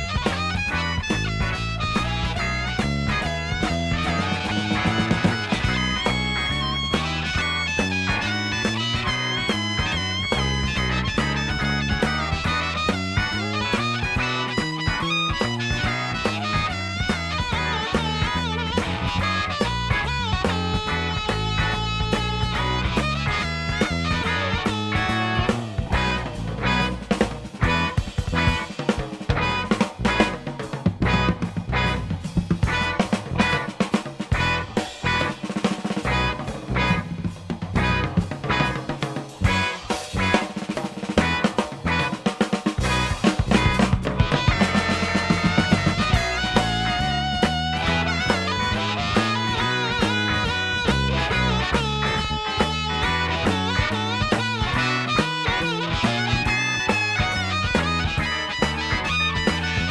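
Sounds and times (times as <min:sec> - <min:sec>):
bass: 0:00.0 - 0:59.9
bending lead guitar notes: 0:00.0 - 0:59.9
drums: 0:00.0 - 0:59.9
electric guitar: 0:00.0 - 0:59.9.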